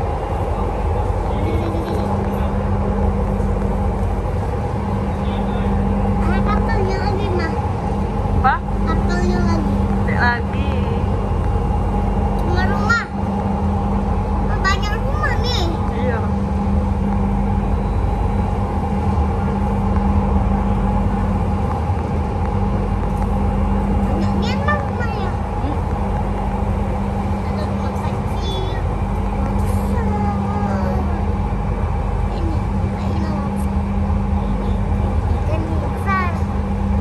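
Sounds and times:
electric train rumbling: 0:00.0 - 0:37.0
child's high voice: 0:14.5 - 0:15.8.

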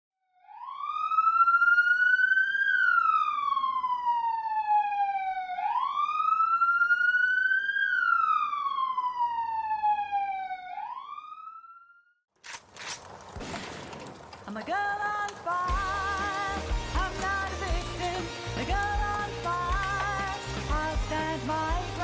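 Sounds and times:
police siren wailing: 0:00.3 - 0:12.2, 0:15.0 - 0:22.0.

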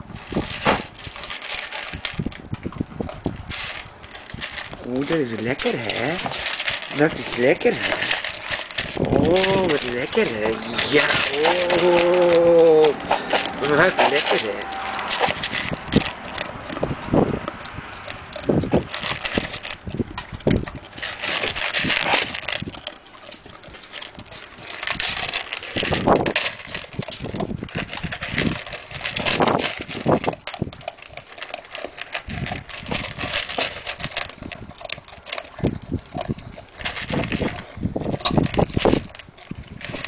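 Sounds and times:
dog crunching kibble: 0:00.0 - 0:40.0
pellets clicking against plastic bowl: 0:00.0 - 0:40.0.

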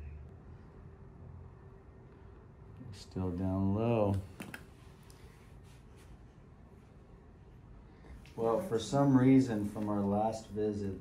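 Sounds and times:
man speaking: 0:08.4 - 0:11.0.

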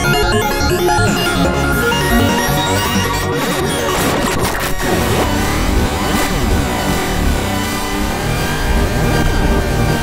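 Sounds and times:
buzzy phased synth drone: 0:00.0 - 0:10.0.

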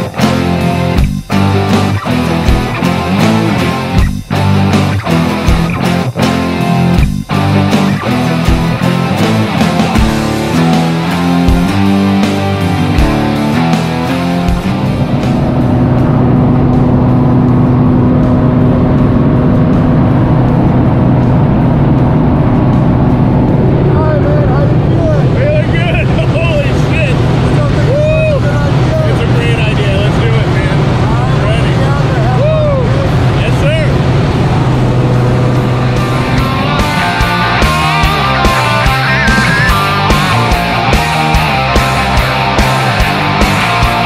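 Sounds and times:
propeller plane engine drone: 0:00.0 - 0:44.0.

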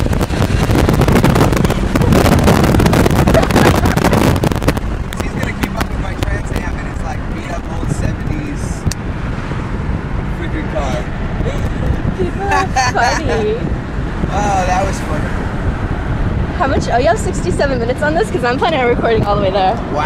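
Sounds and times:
car engine and road noise: 0:00.0 - 0:20.0
wind buffeting microphone: 0:00.0 - 0:20.0.

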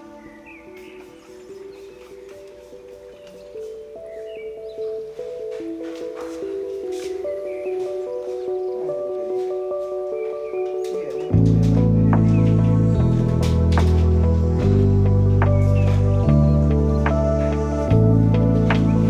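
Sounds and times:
soft melody of held notes: 0:00.0 - 0:19.0
deep bass line: 0:11.4 - 0:19.0.

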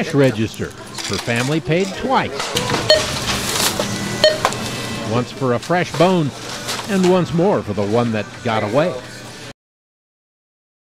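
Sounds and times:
store background noise: 0:00.0 - 0:09.5
barcode scanner beeping: 0:02.8 - 0:05.0.

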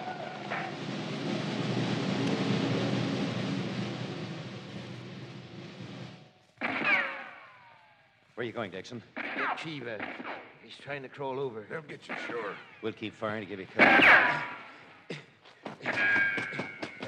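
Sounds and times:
rumbling din of charging crowd: 0:00.0 - 0:06.8.

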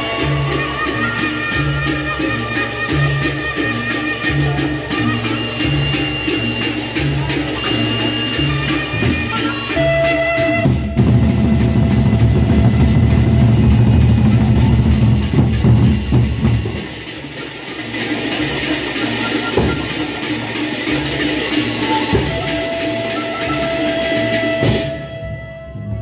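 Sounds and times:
barrel drums beating: 0:08.4 - 0:25.1.

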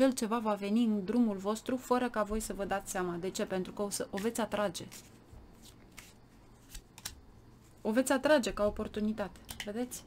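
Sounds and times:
woman speaking: 0:00.0 - 0:05.0, 0:07.8 - 0:10.0
cards clicking and rustling: 0:04.2 - 0:07.2.

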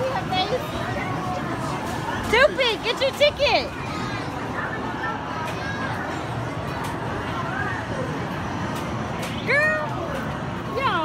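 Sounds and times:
arcade background noise: 0:00.0 - 0:11.0.

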